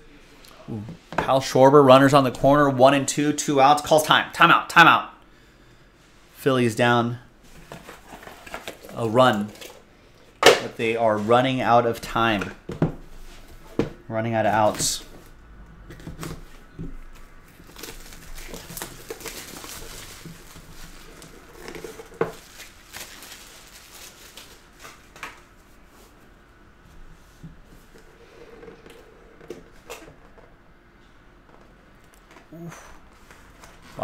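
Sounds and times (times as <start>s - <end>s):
plastic shrink wrap crinkling: 17.5s - 25.5s.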